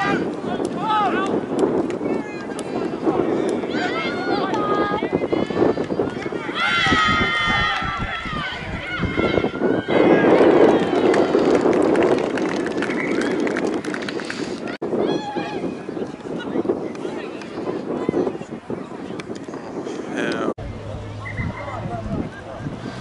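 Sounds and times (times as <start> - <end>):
spectators shouting and cheering: 0.0 - 20.5.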